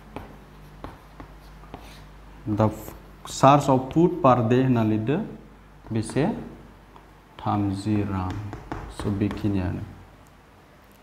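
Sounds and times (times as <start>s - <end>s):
chalk tapping and scratching: 0.0s - 3.0s, 5.8s - 9.7s
steady low hum: 0.0s - 11.0s.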